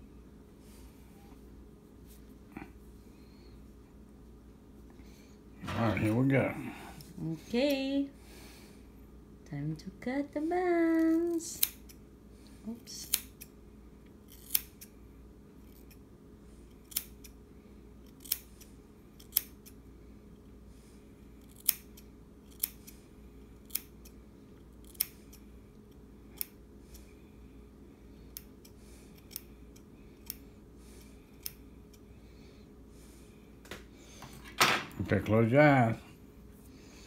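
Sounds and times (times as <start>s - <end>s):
scissors snipping hair: 10.9s - 12.0s, 12.9s - 13.6s, 14.2s - 15.0s, 15.6s - 16.0s, 16.7s - 17.4s, 18.0s - 19.8s, 21.4s - 23.0s, 23.6s - 24.2s, 24.8s - 27.1s, 28.3s - 30.4s, 31.0s - 32.1s.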